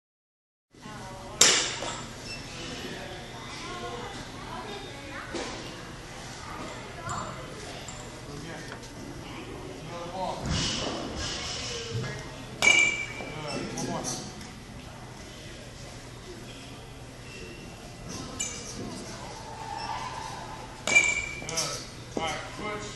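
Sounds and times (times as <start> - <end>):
voices talking: 2.1 - 22.9
metal bat striking ball: 12.6 - 13.2, 20.8 - 21.5.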